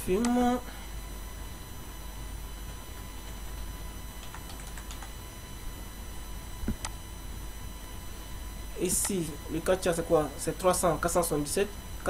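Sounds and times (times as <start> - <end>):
computer keyboard typing: 4.2 - 5.2.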